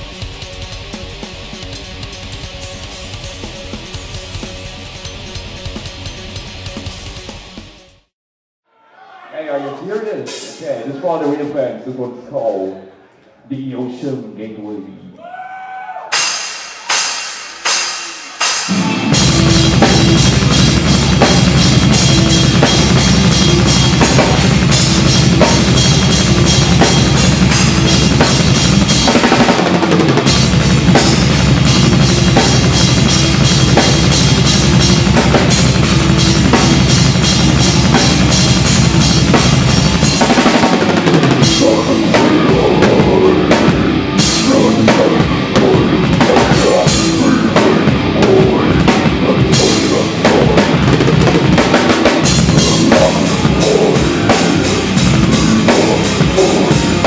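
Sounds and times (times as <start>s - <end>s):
fast metal drumming: 16.2s - 57.0s
low distorted notes: 16.2s - 57.0s.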